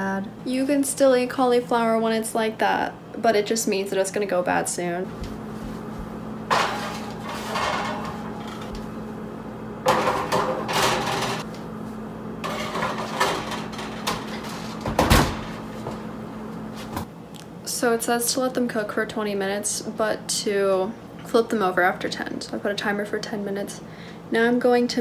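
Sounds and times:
steady low hum: 0.0 - 25.0
metal baking trays scraping: 6.5 - 8.8, 9.9 - 11.4, 12.4 - 14.9
oven door thud: 12.5 - 15.7.

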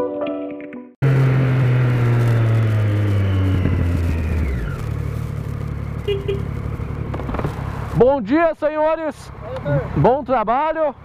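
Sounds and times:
motorcycle engine slowing: 1.0 - 8.2.

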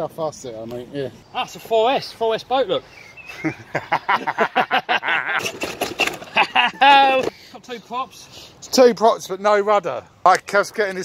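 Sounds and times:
people talking and chuckling: 3.0 - 7.4.

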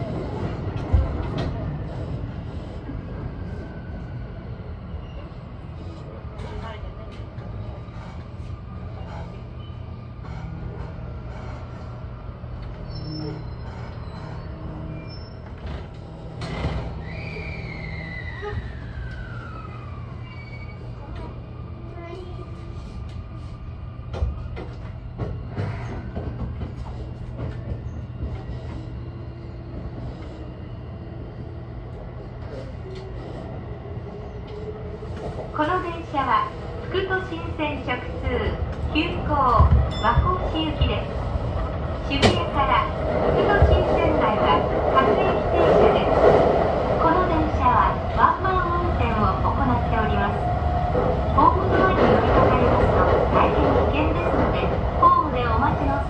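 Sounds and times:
train interior hum: 0.0 - 56.0.

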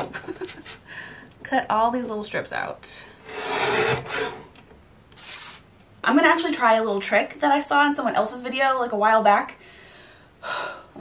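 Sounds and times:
paper sliding and rustling: 5.2 - 5.6.

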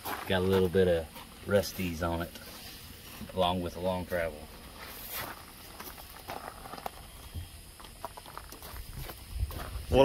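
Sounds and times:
footsteps: 0.0 - 3.6, 4.4 - 10.0.

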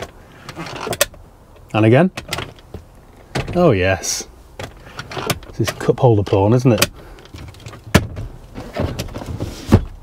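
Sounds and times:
armrest folding thump: 6.8 - 10.0.

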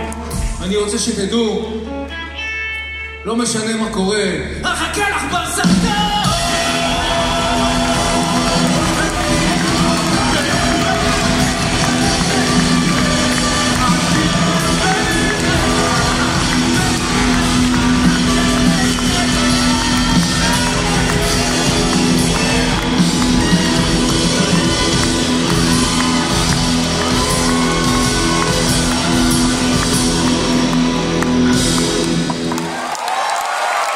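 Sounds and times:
live rock band playing: 0.0 - 3.3, 5.6 - 32.7.

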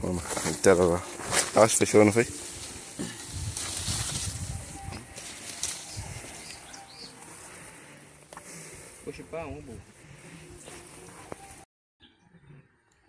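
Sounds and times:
leaves and branches rustling: 0.0 - 11.6.

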